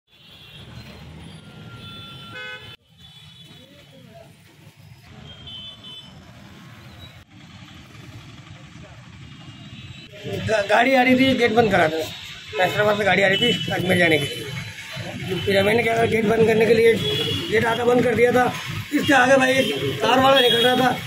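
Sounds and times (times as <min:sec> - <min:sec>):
traffic engine rumble: 0:03.3 - 0:21.0.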